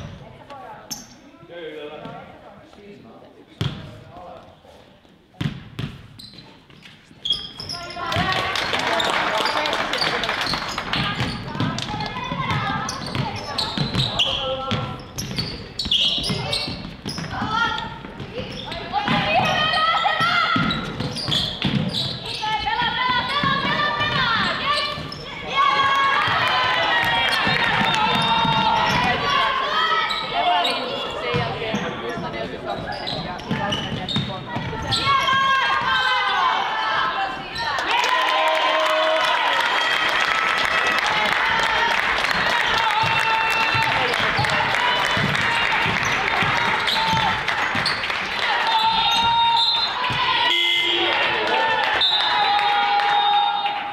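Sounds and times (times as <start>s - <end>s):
players calling out: 7.6s - 53.8s
basketball bouncing on wooden floor: 11.0s - 15.6s, 20.2s - 25.2s, 31.3s - 35.5s, 43.0s - 48.0s.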